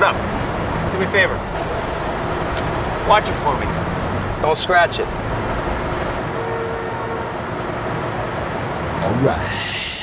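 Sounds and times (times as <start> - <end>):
city street traffic: 0.0 - 10.0.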